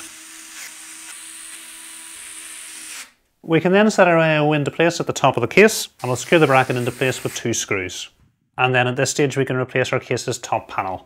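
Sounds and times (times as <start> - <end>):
electric screwdriver motor running: 0.0 - 3.2.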